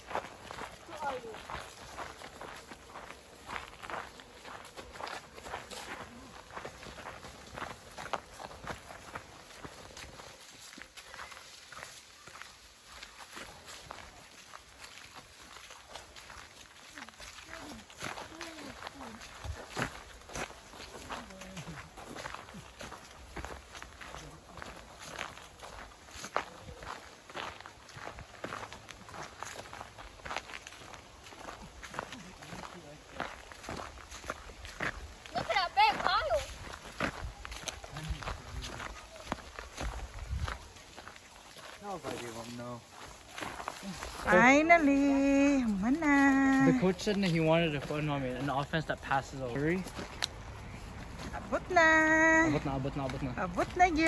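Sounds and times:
footsteps on fallen leaves: 0.0 - 54.0
leaves rustling and crackling: 0.0 - 54.0.

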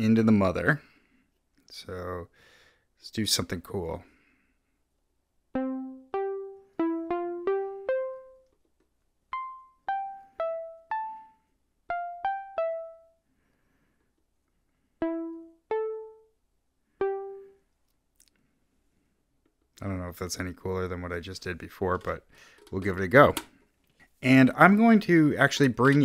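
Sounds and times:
synthesizer plucked notes: 5.6 - 8.5, 9.3 - 13.2, 15.0 - 16.4, 17.0 - 17.6.

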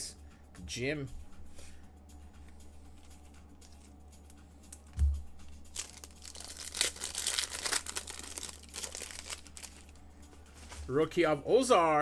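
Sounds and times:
low thump: 5.0 - 5.3
foil card pack tearing and crinkling: 5.7 - 9.9.

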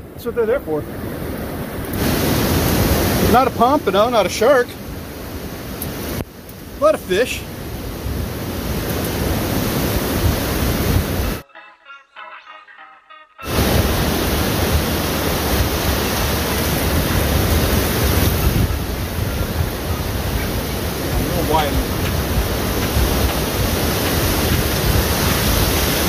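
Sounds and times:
ocean surf: 0.0 - 11.4, 13.4 - 26.0
wind on microphone: 7.5 - 11.4, 13.5 - 26.0.

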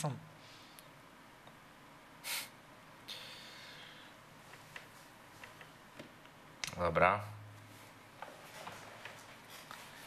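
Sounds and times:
person's sharp breath: 2.2 - 4.2
breathy hiss: 2.2 - 4.3.

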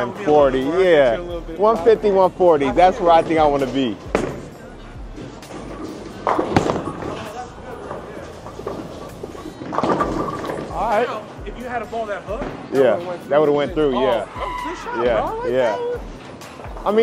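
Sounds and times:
background music: 0.0 - 17.0
voices: 0.0 - 17.0
bowling ball rolling: 2.9 - 11.3
bowling ball thud on lane: 5.8 - 7.3.

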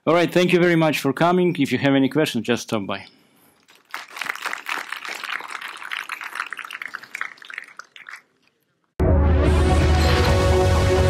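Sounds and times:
audience applauding: 3.7 - 8.3.

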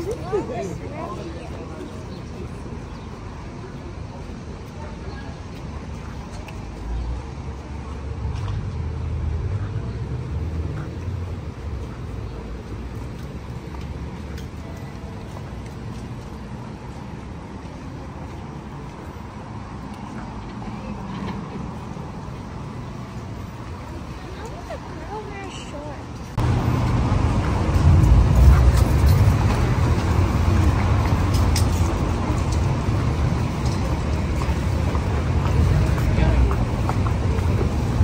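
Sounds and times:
city traffic noise: 0.0 - 38.0.

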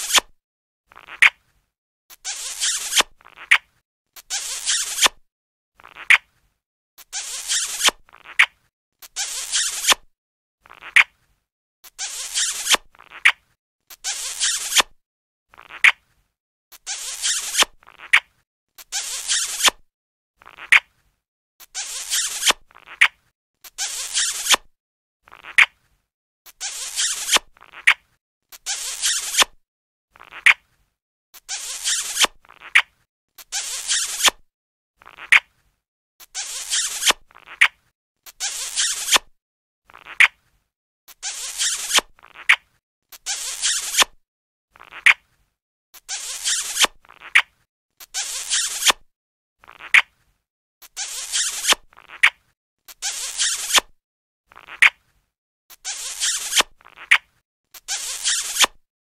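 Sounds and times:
cartoon kissing sound effect: 0.0 - 0.3, 0.9 - 1.4, 2.2 - 5.2, 5.8 - 6.3, 7.2 - 10.0, 10.7 - 11.2, 12.0 - 14.9, 15.6 - 16.0, 16.9 - 19.8, 20.4 - 21.0, 21.8 - 24.7, 25.3 - 25.8, 26.7 - 29.6, 30.2 - 30.7, 31.6 - 34.4, 35.0 - 35.5, 36.4 - 39.3, 39.9 - 40.4, 41.3 - 44.2, 44.8 - 45.3, 46.1 - 49.0, 49.6 - 50.2, 50.9 - 53.9, 54.5 - 55.1, 55.9 - 58.7.

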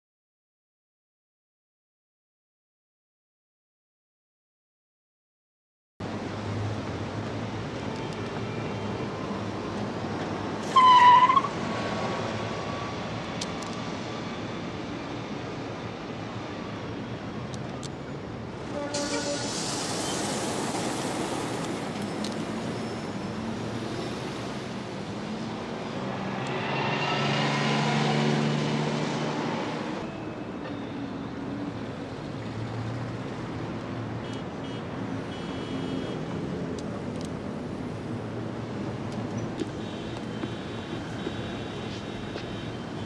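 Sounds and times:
road traffic noise: 6.0 - 43.0
vehicle passing: 23.7 - 30.0.

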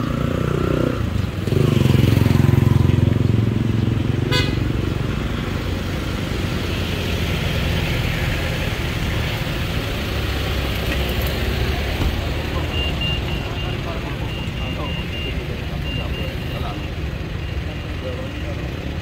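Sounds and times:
traffic engine rumble: 0.0 - 19.0
short high beeps: 12.6 - 16.6.

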